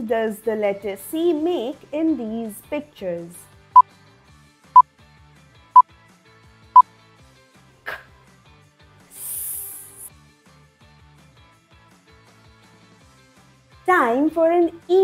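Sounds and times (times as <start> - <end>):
faint background music: 0.0 - 5.2, 6.8 - 10.6, 12.0 - 15.0
airy hiss: 9.2 - 10.1.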